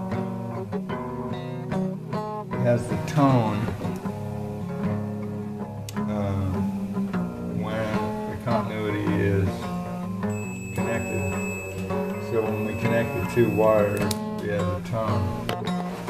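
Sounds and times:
guitar background music: 0.0 - 16.0
high-pitched continuity tester beep: 10.3 - 14.2.

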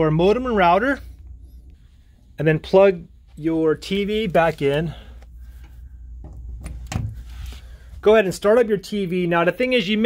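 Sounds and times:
low steady rumble: 0.0 - 9.7.

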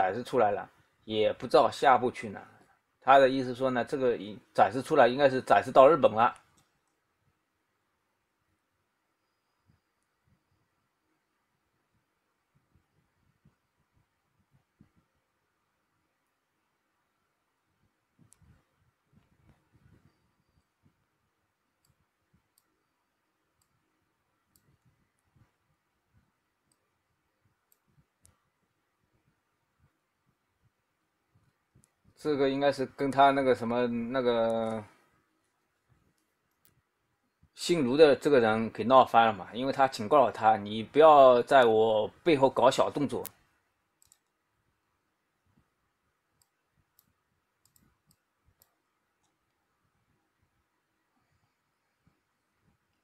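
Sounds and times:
computer mouse clicks: 18.2 - 21.0, 21.8 - 25.6, 27.6 - 28.5, 43.1 - 44.4, 46.4 - 49.6.

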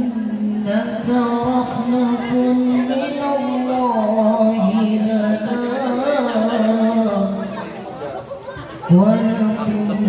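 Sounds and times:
lead vocalist singing: 0.0 - 7.7, 8.9 - 10.0
people talking: 0.0 - 10.0.

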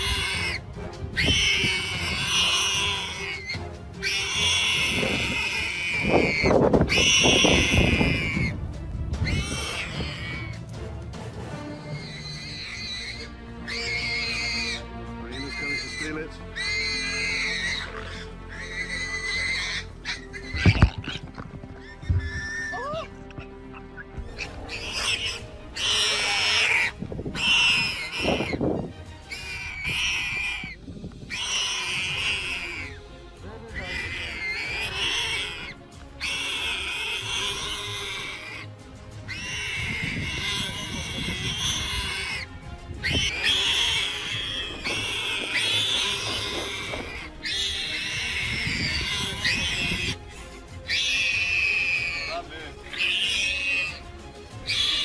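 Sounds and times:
warthog squealing: 0.0 - 8.6, 9.2 - 10.7, 11.6 - 33.0, 33.7 - 55.0
background music: 0.0 - 55.0.

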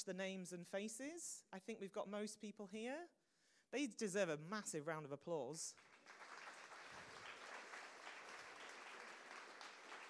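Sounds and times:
faint audience applause: 5.8 - 10.0.

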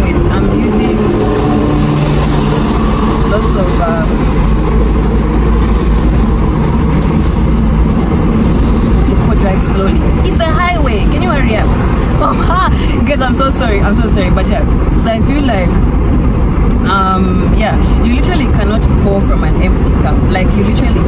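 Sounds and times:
car driving rumble: 0.0 - 21.0.

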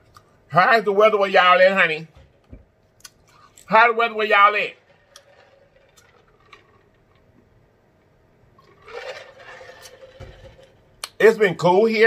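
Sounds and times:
liquid gulping and sloshing: 8.6 - 10.8.

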